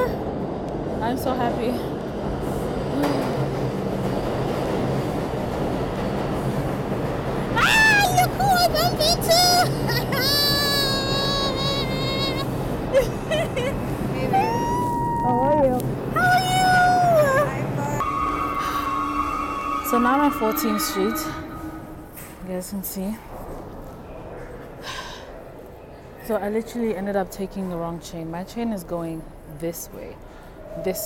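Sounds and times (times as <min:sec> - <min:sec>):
subway train rumbling: 0:00.0 - 0:31.0.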